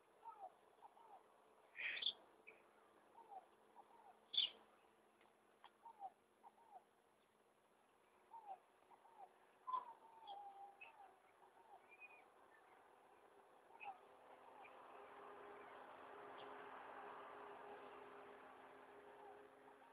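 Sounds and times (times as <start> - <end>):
faint bird calls: 0.0 - 5.0, 5.6 - 15.0.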